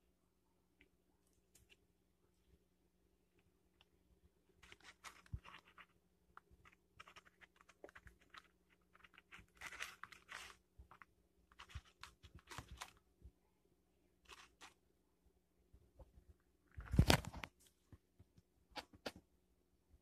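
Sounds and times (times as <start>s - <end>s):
aluminium foil crinkling: 4.6s - 13.0s, 14.2s - 14.8s.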